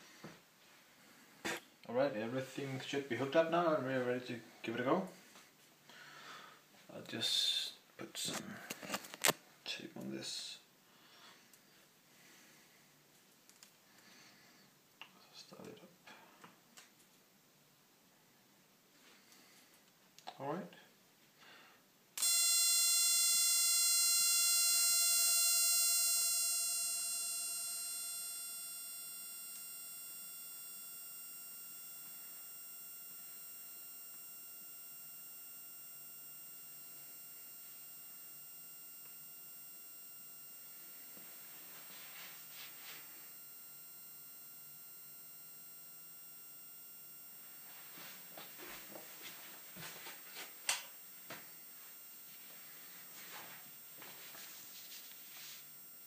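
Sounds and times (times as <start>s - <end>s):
high-pitched electronic whine: 22.2s - 56.0s.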